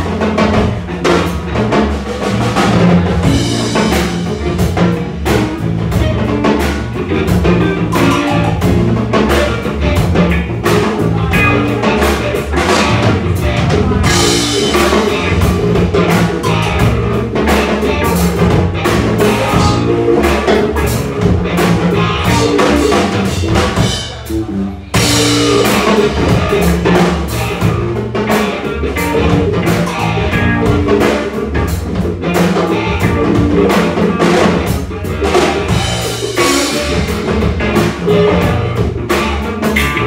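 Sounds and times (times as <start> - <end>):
drum kit beat: 0.0 - 40.0
electric guitar: 0.0 - 40.0
low bass notes: 0.0 - 40.0.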